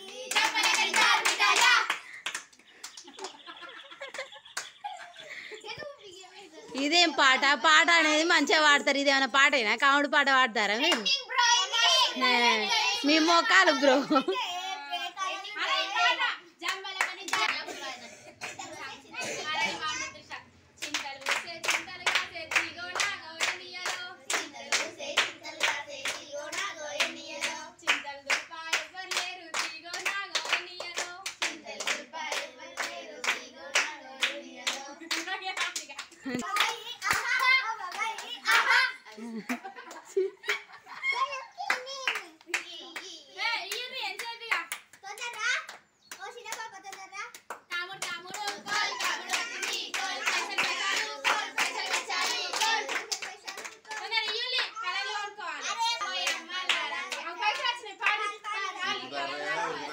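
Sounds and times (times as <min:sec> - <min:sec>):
rhythmic hand clapping: 0:00.0 - 0:05.0, 0:16.6 - 0:17.8, 0:20.8 - 0:40.7, 0:41.6 - 0:43.1, 0:43.7 - 0:55.2, 0:55.8 - 0:59.0
girls singing a folk song: 0:47.8 - 0:54.1.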